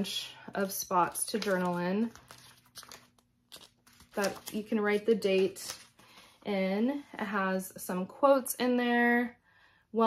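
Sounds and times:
paper pages flipping: 0.5s - 6.4s.

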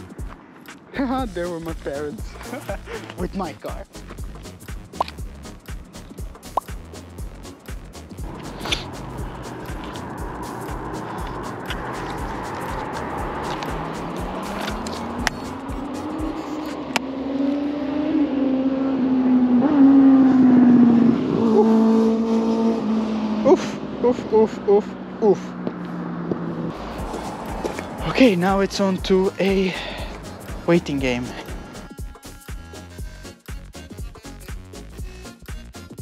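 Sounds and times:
background music: 0.0s - 17.0s, 26.7s - 36.0s
car engine accelerating past: 8.2s - 28.4s.

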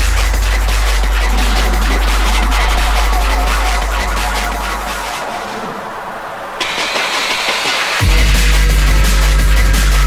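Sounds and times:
drum and bass breakdown: 0.0s - 10.0s
hissing noise riser: 0.5s - 8.1s.

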